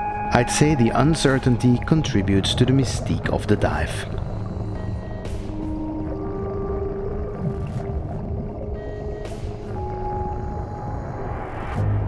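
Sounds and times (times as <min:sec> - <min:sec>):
ambient drone music: 0:00.0 - 0:12.0.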